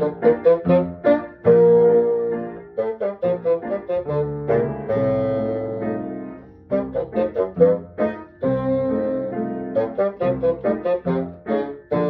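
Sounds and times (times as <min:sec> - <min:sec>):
bassoon melody: 0:00.0 - 0:12.0
piano accompaniment: 0:00.0 - 0:12.0.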